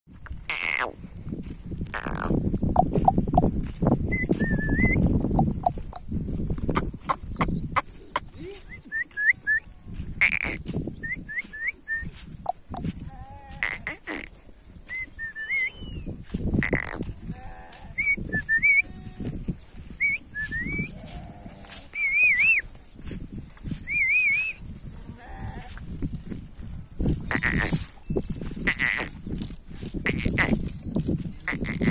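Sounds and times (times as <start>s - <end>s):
thin wavering whistle: 4.1s - 5.0s, 14.9s - 16.1s, 20.0s - 20.9s, 22.0s - 22.6s, 23.8s - 24.6s
sheep bleating: 12.9s - 14.1s, 17.2s - 18.0s, 20.9s - 21.8s, 25.0s - 25.8s.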